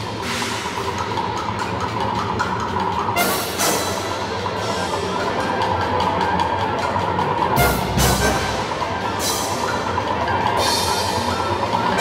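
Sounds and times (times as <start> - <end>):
symphony orchestra playing: 3.2 - 4.8, 7.4 - 11.2.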